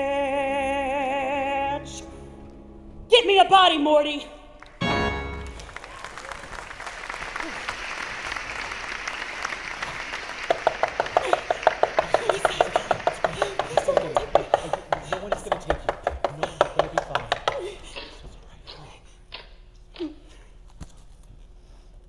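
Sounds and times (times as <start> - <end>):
audience applause: 4.6 - 17.7
steady rhythmic clapping: 4.6 - 18.2.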